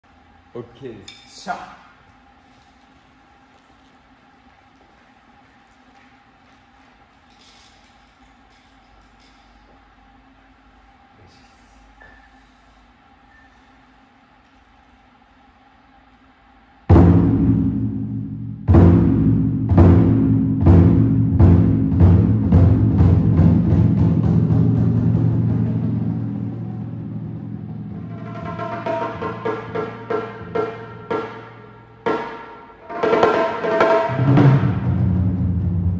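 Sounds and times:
room hum: 0.0s - 35.9s
large drum booming strokes: 16.9s - 35.9s.

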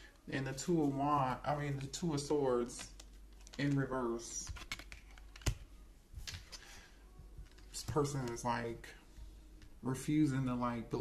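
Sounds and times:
cards tapping and rustling: 2.6s - 5.6s, 6.2s - 6.8s.

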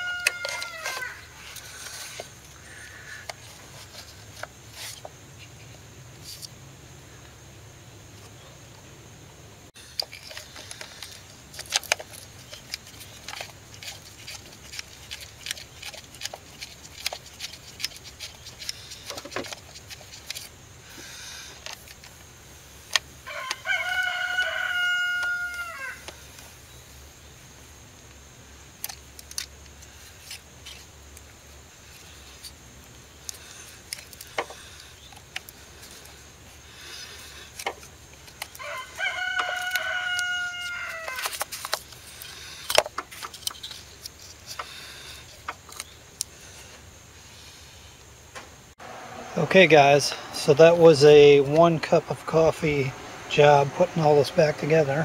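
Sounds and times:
rooster crowing: 0.0s - 1.5s, 23.2s - 26.1s, 38.4s - 41.4s.

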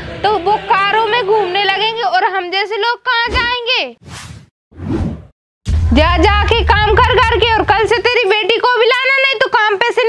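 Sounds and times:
woman's voice: 0.2s - 4.0s, 5.9s - 10.0s.

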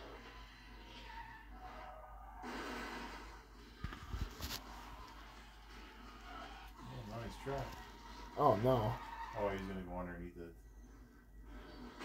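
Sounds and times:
faint action film soundtrack: 0.0s - 12.0s.

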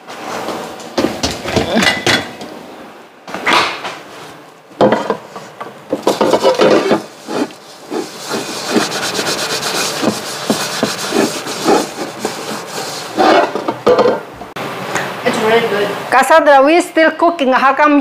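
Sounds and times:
wooden spatula scraping metal pan: 5.2s - 14.1s.

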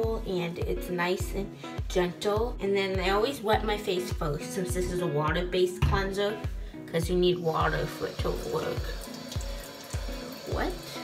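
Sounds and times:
background music with beat: 0.0s - 11.0s
tap water running into sink: 7.6s - 11.0s.

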